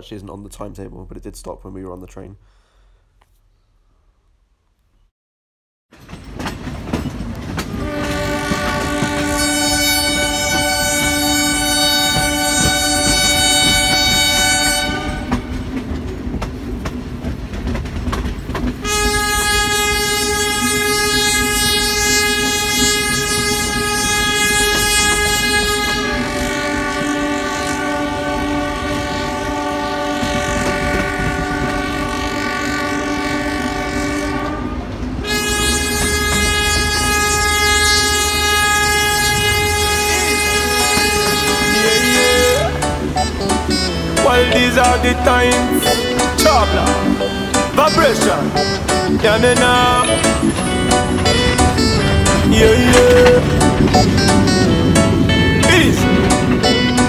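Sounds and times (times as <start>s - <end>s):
train carriages rumbling on track: 5.9s - 57.0s
train horn blasts: 7.7s - 15.8s, 18.8s - 57.0s.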